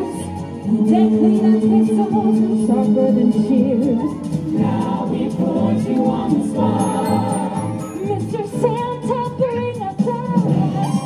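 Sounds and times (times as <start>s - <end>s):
pop song over sound system: 0.0s - 11.0s
voices singing wordless line: 0.0s - 11.0s.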